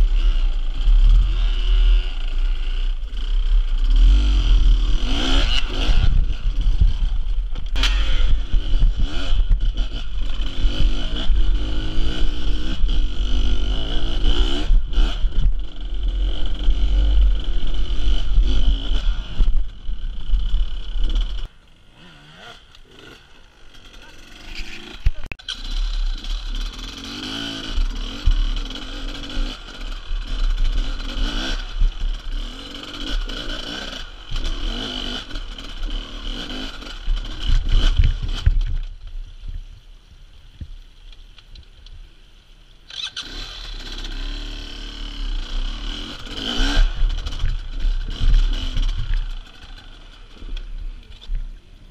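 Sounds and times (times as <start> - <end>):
dirt bike engines revving: 0.0 - 38.9, 42.8 - 51.9.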